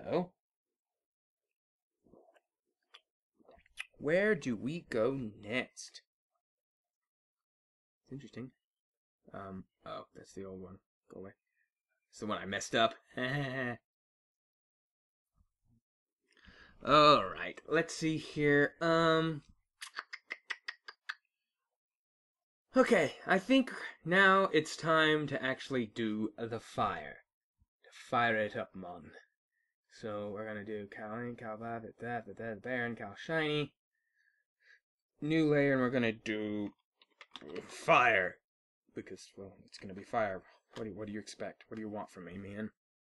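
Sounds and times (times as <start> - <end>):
man speaking: 0.0 - 0.4, 16.8 - 21.0, 22.8 - 27.2, 30.0 - 33.8, 37.4 - 38.4, 39.0 - 42.8
faint mouth noises: 19.8 - 21.2.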